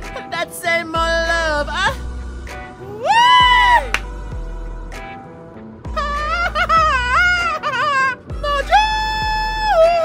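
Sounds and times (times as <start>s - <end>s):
woman singing in wailing voice: 6.0s - 10.0s.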